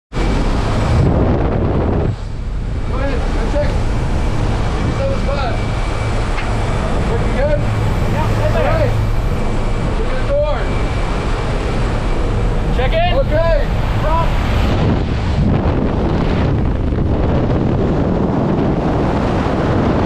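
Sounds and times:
propeller engine drone: 0:00.1 - 0:20.0
rushing wind: 0:00.1 - 0:20.0
voices: 0:04.6 - 0:14.4.

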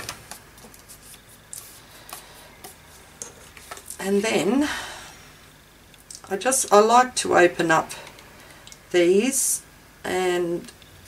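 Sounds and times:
faint paper rustling: 0:00.0 - 0:04.0.

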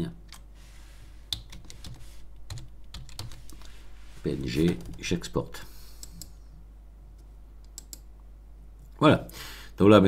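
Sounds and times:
typing on keyboard: 0:01.3 - 0:03.7.

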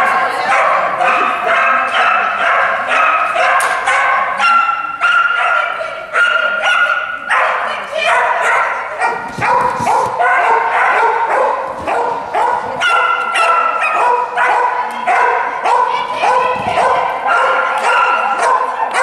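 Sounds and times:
dog barking: 0:00.4 - 0:19.0.

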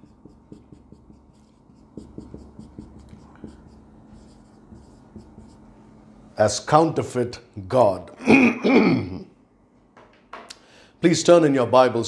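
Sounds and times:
marker writing on a whiteboard: 0:00.0 - 0:05.7.

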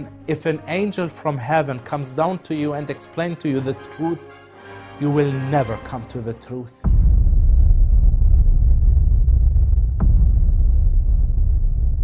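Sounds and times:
deep cinematic rumble: 0:06.8 - 0:12.0.

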